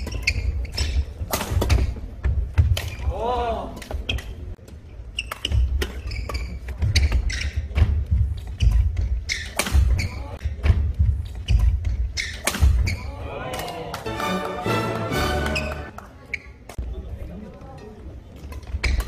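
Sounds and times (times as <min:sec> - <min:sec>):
rackets hitting shuttlecock: 0:05.2 - 0:13.8.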